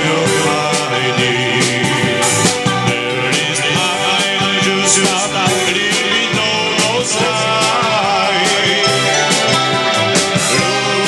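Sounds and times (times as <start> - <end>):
dance band music over speaker: 0.0 - 11.0
person singing: 0.0 - 11.0.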